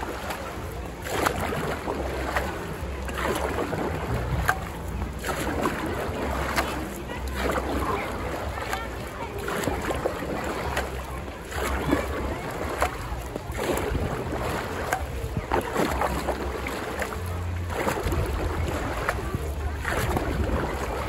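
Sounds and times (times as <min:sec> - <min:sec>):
low wind rumble on microphone: 0:00.0 - 0:21.0
paddle splashing through water: 0:00.0 - 0:21.0.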